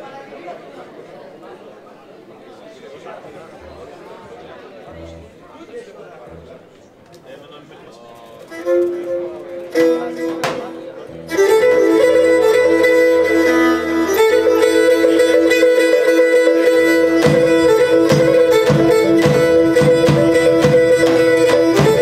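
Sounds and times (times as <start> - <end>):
guitar: 8.4 - 22.0
bowed lyra: 8.5 - 22.0.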